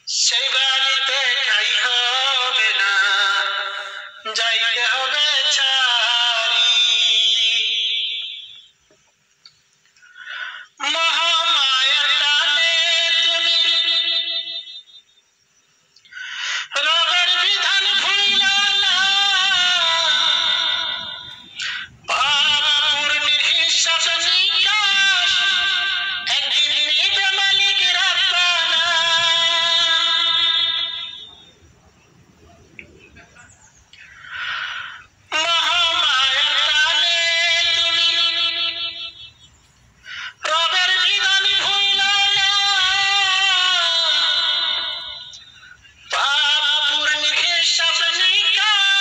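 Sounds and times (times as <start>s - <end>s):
person singing a long note: 16.6s - 31.8s, 34.2s - 39.3s, 40.3s - 45.5s.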